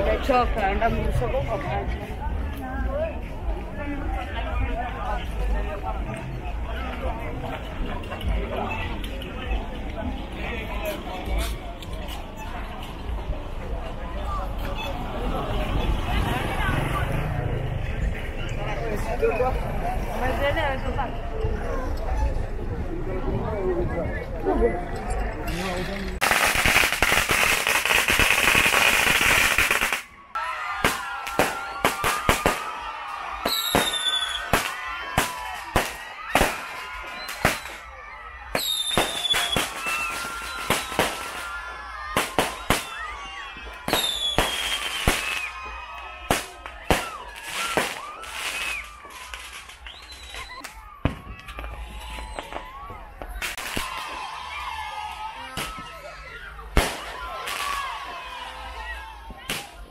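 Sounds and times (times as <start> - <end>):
fireworks bangs and cracks: 26.2 - 30.2, 30.8 - 58.2, 59.0 - 59.9
falling firework whistles: 33.5 - 37.9, 38.5 - 45.7, 46.3 - 54.1.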